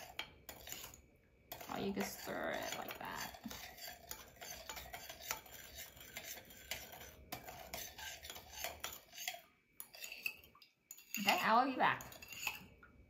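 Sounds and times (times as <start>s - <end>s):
spoon clinking and scraping bowl: 0.0s - 12.8s.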